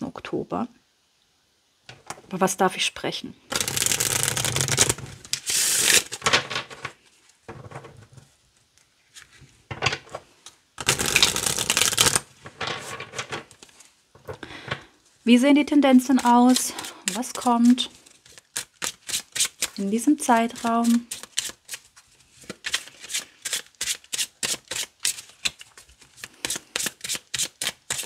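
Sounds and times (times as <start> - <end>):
cards being riffle-shuffled: 3.5 - 7.0, 8.8 - 13.9, 15.9 - 28.0.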